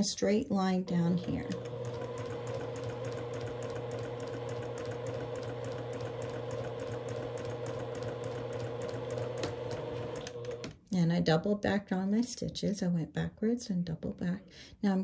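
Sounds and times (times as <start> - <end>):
low motor hum: 1.0 - 10.7
sewing machine needle ticking: 1.1 - 10.7.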